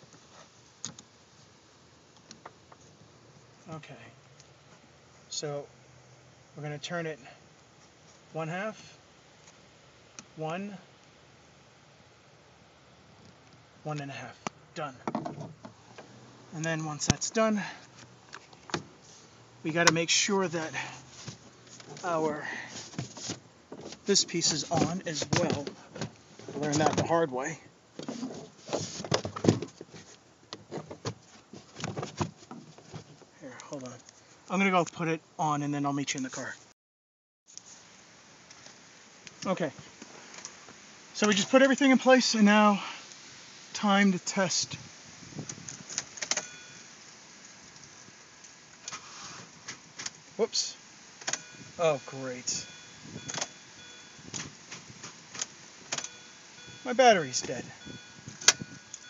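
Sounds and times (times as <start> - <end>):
faint high electronic tones: 46.4 - 47.0, 51.4 - 54.3, 56.0 - 59.0.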